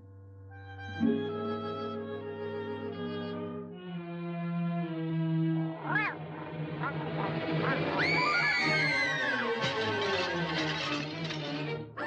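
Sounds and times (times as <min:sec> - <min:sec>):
orchestral cartoon score: 0:00.6 - 0:12.0
cartoon cat meowing: 0:05.8 - 0:06.2
cartoon cat screeching: 0:05.8 - 0:06.2, 0:07.6 - 0:09.6.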